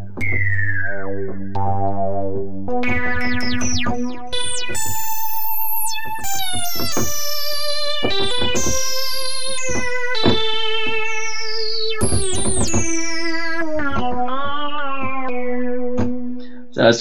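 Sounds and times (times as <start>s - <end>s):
synthesizer lead notes with vibrato: 0.0s - 16.8s.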